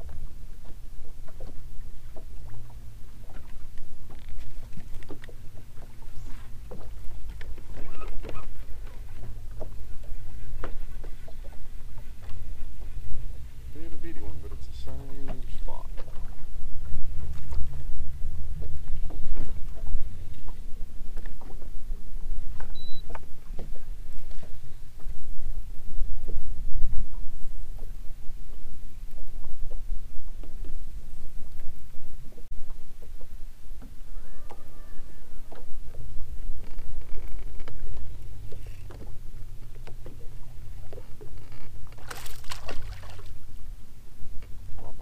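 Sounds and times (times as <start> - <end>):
wind and water rumble: 0.0 - 45.0.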